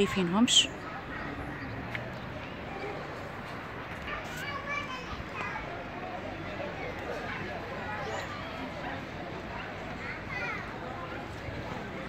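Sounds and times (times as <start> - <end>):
children chattering: 0.0 - 12.0
outdoor background noise: 0.0 - 12.0.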